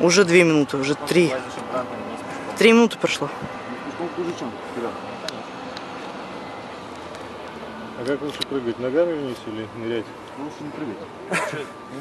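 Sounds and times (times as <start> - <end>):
outdoor hiss and rumble: 0.0 - 12.0.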